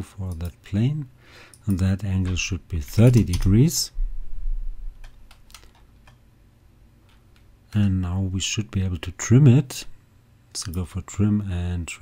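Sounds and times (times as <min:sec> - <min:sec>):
computer keyboard keystrokes: 0:01.5 - 0:03.6, 0:05.0 - 0:06.2.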